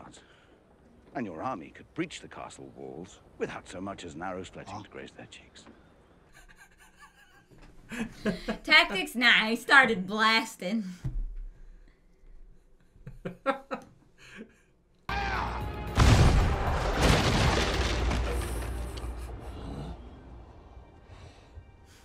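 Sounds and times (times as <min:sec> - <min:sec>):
soundtrack music: 0:15.1 - 0:17.1
cannon fire and explosions: 0:15.6 - 0:20.8.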